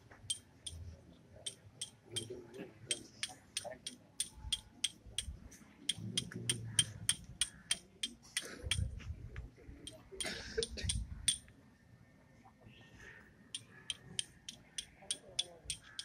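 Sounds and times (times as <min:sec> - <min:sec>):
light sharp metallic clicks: 0:01.5 - 0:08.9, 0:09.9 - 0:11.5, 0:13.6 - 0:16.0.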